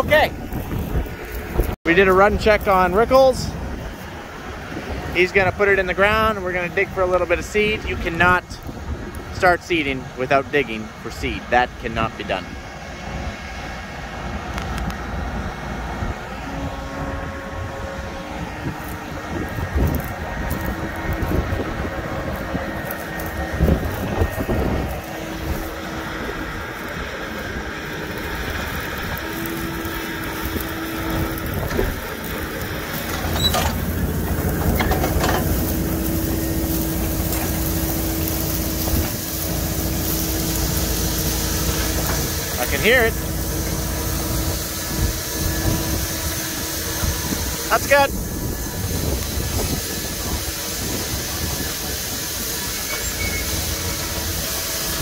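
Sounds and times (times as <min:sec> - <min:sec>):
wind buffeting microphone: 0:00.0 - 0:10.2, 0:12.3 - 0:52.8
tractor engine and fan hum: 0:00.0 - 0:55.0
deep rumble of drill in soil: 0:12.4 - 0:55.0.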